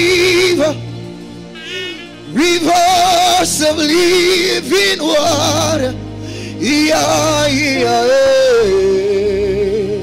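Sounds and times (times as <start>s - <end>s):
man singing with vibrato: 0.0s - 0.8s, 1.6s - 10.0s
sustained instrumental accompaniment: 0.0s - 10.0s.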